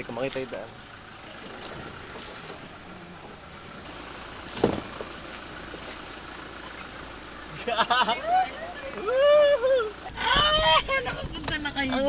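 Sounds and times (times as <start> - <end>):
car engine and road rumble: 0.0 - 12.0
car bump: 4.4 - 6.0, 10.1 - 12.0.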